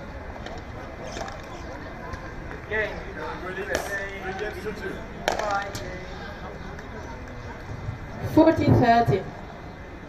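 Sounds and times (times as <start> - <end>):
faint voices: 0.0 - 10.0
outdoor background noise: 0.0 - 10.0.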